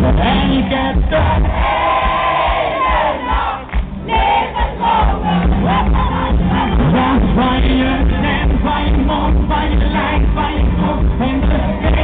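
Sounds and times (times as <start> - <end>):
audience singing and shouting: 0.0 - 12.0
live band music: 0.0 - 12.0.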